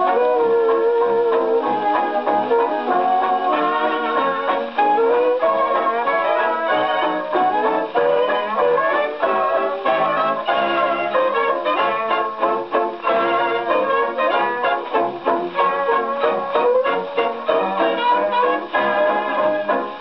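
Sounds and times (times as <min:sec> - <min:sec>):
dance band on gramophone record: 0:00.0 - 0:20.0.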